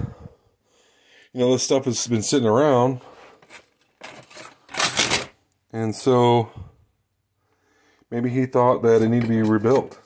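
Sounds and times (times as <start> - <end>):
rubbing and scraping: 3.0 - 5.3.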